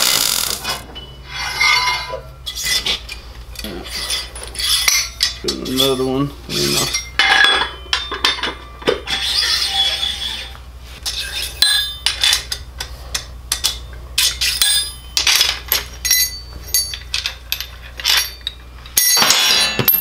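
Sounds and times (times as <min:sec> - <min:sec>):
metal scraping on axle: 0:00.0 - 0:07.2, 0:09.0 - 0:11.6
steady low hum: 0:00.0 - 0:20.0
steel parts clinking: 0:00.0 - 0:20.0.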